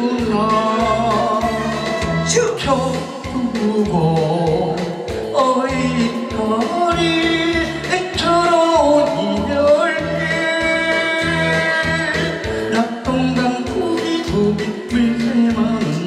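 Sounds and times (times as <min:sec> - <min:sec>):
backing track with bass beat: 0:00.0 - 0:16.0
man singing into a microphone: 0:00.0 - 0:16.0.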